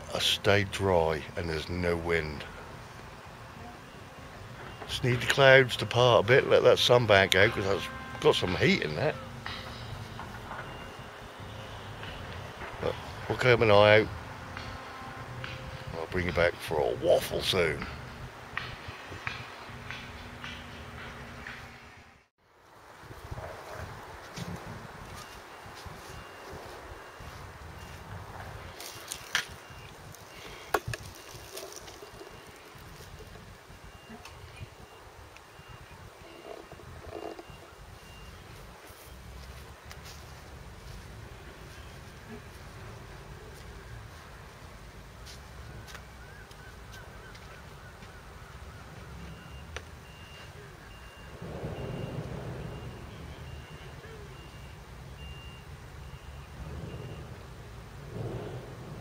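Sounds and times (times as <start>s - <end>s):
faint high-pitched beeping: 0.0s - 18.2s, 25.0s - 44.2s, 48.7s - 57.5s
distant machinery rumble: 0.0s - 22.3s, 26.1s - 59.0s.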